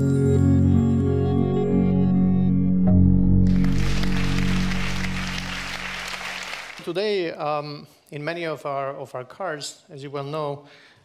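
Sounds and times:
ambient intro music chord: 0.0 - 6.8
audience applause: 3.4 - 7.2.

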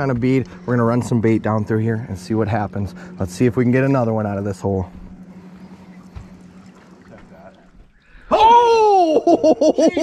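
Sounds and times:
faint low hum: 0.0 - 10.0
water lapping against boat hull: 4.8 - 8.1.

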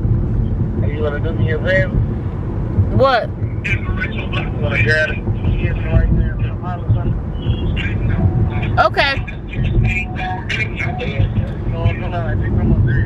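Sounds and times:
car cabin rumble while driving: 0.0 - 13.0
voices talking: 3.0 - 13.0.

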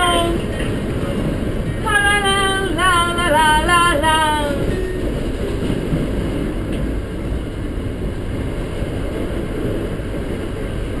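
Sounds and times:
train rumbling inside carriage: 0.0 - 11.0.

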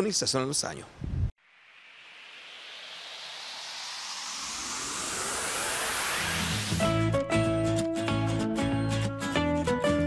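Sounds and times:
rising whoosh: 1.4 - 7.6.

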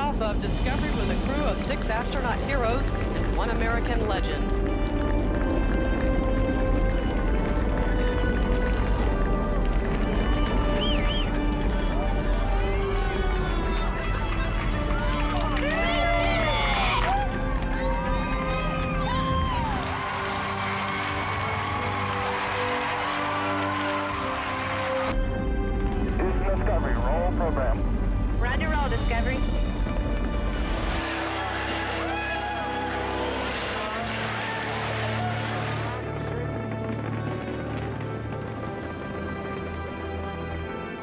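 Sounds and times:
music with long held notes: 0.8 - 41.0
crowd applause: 0.9 - 27.6, 29.8 - 41.0
people whooping and cheering: 7.3 - 25.2, 30.6 - 36.6.

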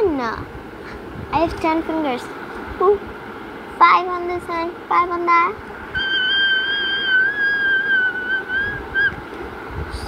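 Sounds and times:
high whistle-like note: 6.0 - 9.2.

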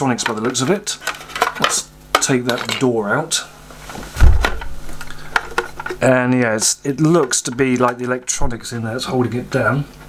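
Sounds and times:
low thump: 4.0 - 5.0.

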